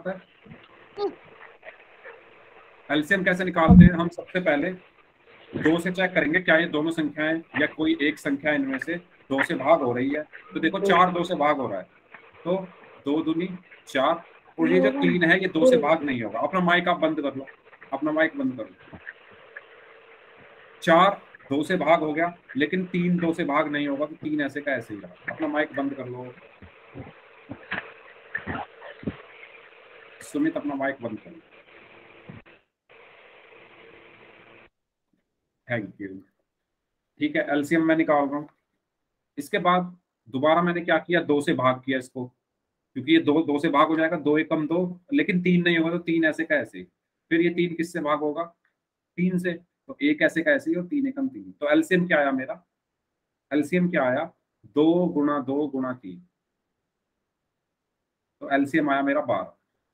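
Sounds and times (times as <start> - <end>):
faint background noise: 0.0 - 34.7, 35.6 - 59.9
squeaks through microphone: 3.7 - 4.1.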